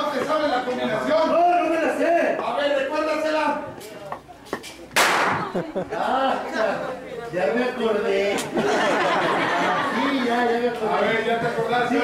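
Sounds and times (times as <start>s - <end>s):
loud sharp crack with echo: 5.0s - 5.6s.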